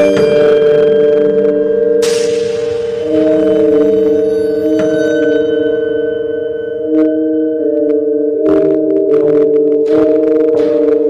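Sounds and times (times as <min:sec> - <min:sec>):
bell-like ringing drone music: 0:00.0 - 0:11.0.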